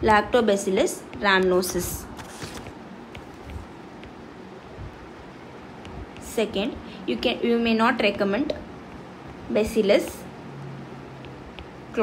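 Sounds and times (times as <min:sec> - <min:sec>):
low background noise: 0:00.0 - 0:12.0
stylus tapping on glass screen: 0:11.2 - 0:11.8.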